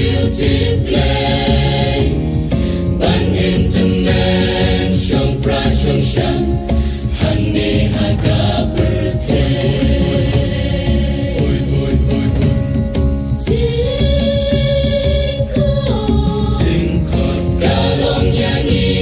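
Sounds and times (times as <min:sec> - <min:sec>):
choir singing with accompaniment: 0:00.0 - 0:19.0.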